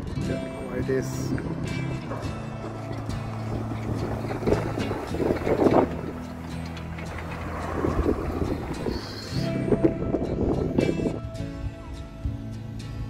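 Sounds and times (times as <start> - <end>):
background music with held chords: 0.0 - 13.0
pickup truck driving past: 0.0 - 13.0
wind buffeting microphone: 0.0 - 13.0.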